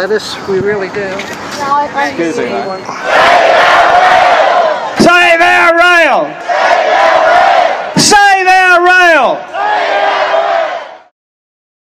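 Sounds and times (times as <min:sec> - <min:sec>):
person shouting a chant: 0:07.9 - 0:09.8.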